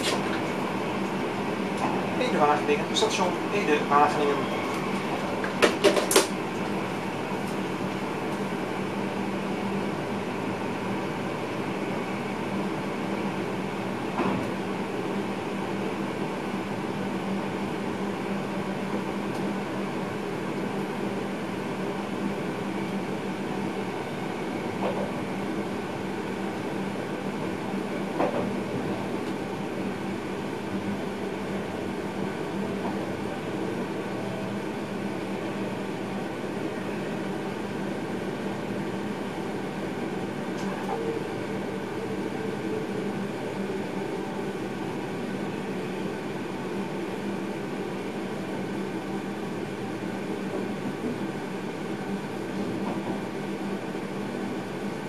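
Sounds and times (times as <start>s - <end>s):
train wheels rumbling on rail: 0.0s - 47.1s, 52.4s - 53.7s
constant hum: 0.0s - 55.0s.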